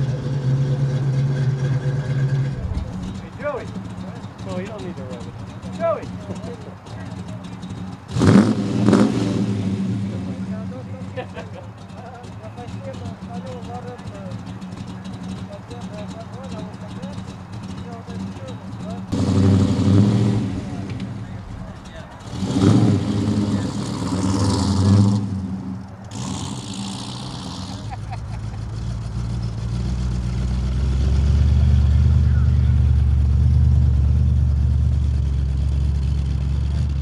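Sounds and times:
car engine deep rumble: 0:00.0 - 0:37.0
car exhaust revving: 0:00.0 - 0:37.0.

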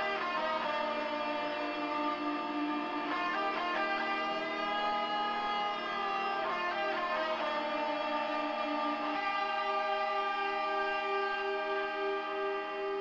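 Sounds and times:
electric guitar music: 0:00.0 - 0:13.0.

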